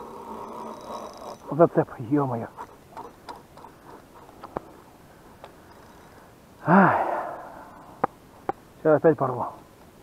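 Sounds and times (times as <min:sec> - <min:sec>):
sharp clicks of rod and reel: 0:02.9 - 0:04.7.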